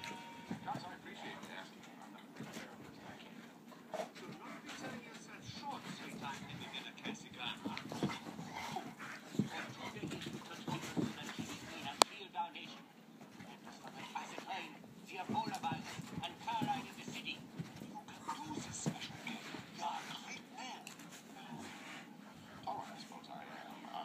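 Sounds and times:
dogs play fighting: 0.0s - 24.0s.

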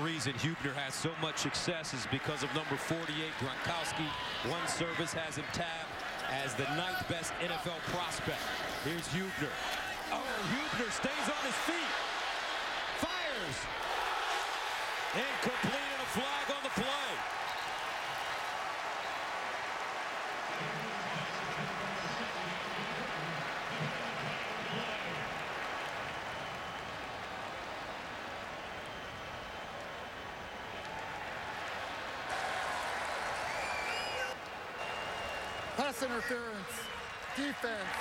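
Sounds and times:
stadium crowd noise: 0.0s - 38.0s.

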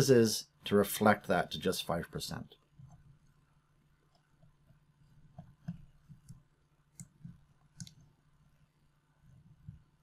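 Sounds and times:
computer mouse clicks: 4.1s - 8.1s.

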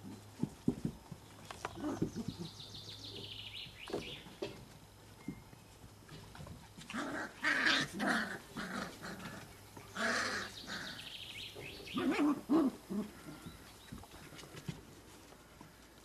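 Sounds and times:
puppies play-growling: 0.0s - 3.4s, 6.0s - 16.0s.

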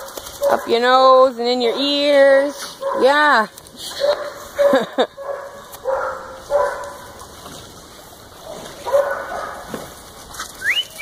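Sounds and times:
dogs barking: 0.0s - 0.8s, 1.6s - 3.2s, 3.9s - 7.2s, 8.4s - 9.9s.

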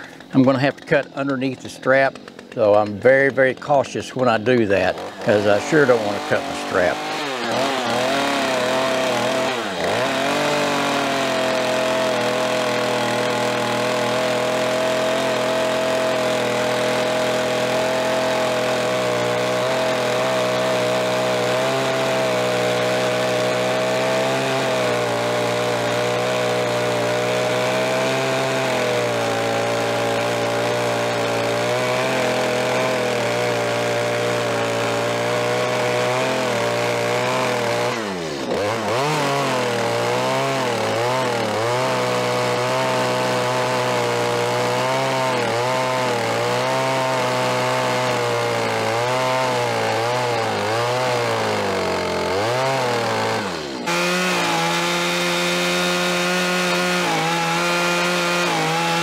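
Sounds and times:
chainsaw cutting log: 0.0s - 59.0s.

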